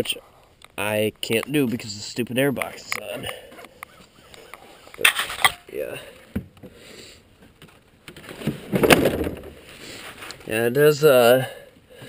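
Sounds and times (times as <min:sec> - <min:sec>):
plastic hood scraping shut: 0:08.2 - 0:09.7.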